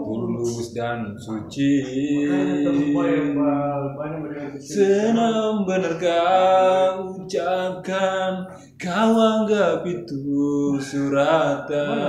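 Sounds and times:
man singing a long note: 0.0s - 3.5s.

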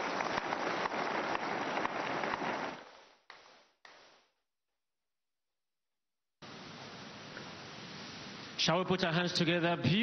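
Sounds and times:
crowd applauding: 0.0s - 3.4s.

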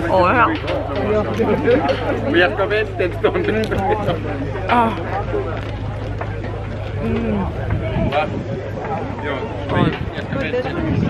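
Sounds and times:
low engine hum: 0.0s - 11.0s
voices chattering: 0.0s - 11.0s.

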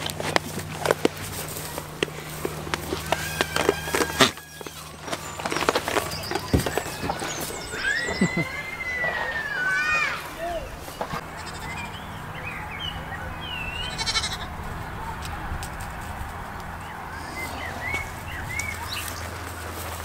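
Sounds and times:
hooves knocking on wood: 0.0s - 7.7s
goat bleating: 1.7s - 5.4s, 11.2s - 12.0s, 13.6s - 14.6s
person laughing: 7.9s - 8.7s.

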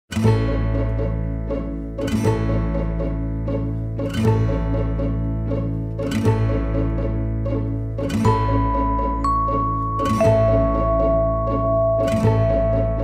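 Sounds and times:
instrumental background music: 0.1s - 13.0s.

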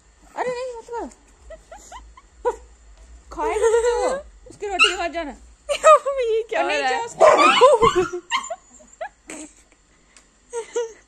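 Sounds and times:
dogs whining and yelping: 4.8s - 5.1s, 7.2s - 9.2s.

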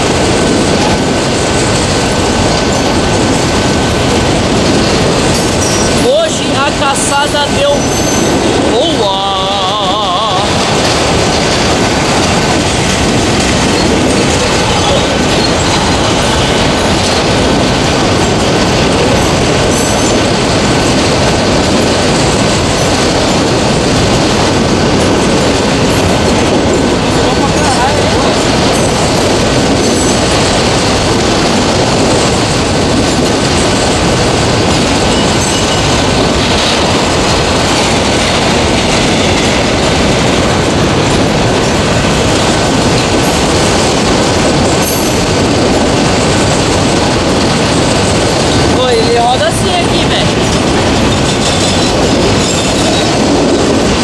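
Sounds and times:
freight train rolling past: 0.0s - 54.0s.

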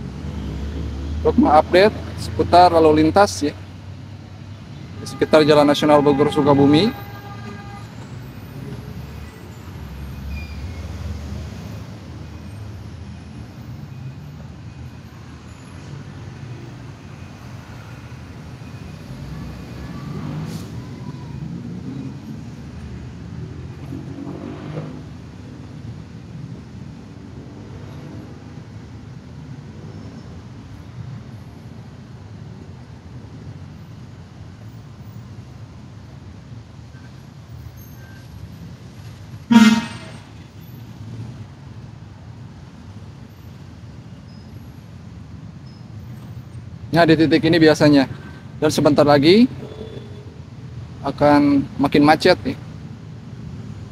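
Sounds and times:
louder vehicle passing: 0.0s - 3.5s, 17.9s - 25.7s, 39.4s - 41.6s
congested road traffic rumble: 0.0s - 53.9s.

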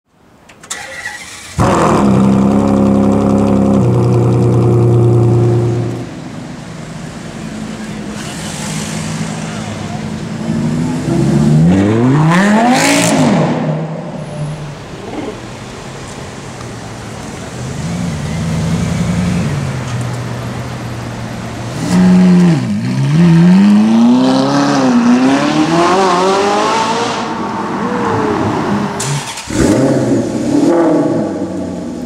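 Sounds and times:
sports car engine revving: 1.4s - 6.1s, 10.2s - 14.2s, 21.7s - 28.0s, 28.8s - 32.0s.

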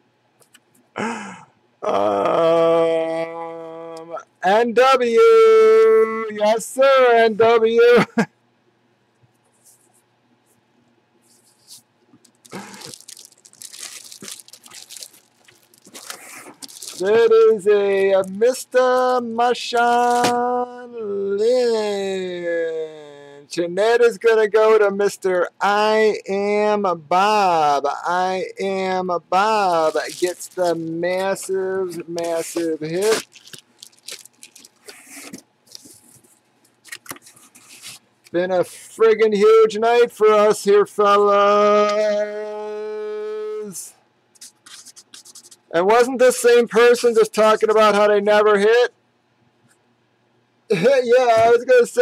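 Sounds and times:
plastic packaging crinkling: 11.5s - 17.3s, 29.5s - 38.0s.

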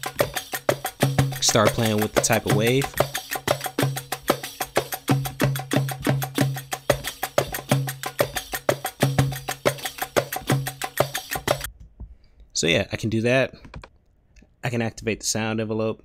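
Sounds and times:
fast run of sharp percussive hits: 0.0s - 11.7s.

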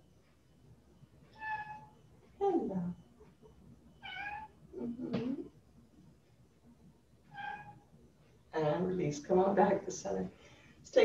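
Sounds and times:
cat meowing: 1.4s - 1.9s, 4.0s - 4.5s, 7.3s - 7.8s.

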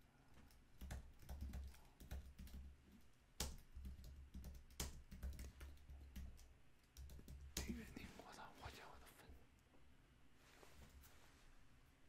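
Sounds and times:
faint keyboard typing: 0.0s - 9.1s.

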